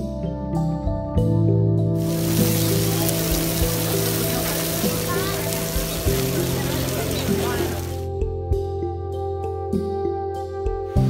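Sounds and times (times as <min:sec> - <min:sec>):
background music with held notes: 0:00.0 - 0:11.0
geyser jet rushing hiss: 0:02.0 - 0:08.0.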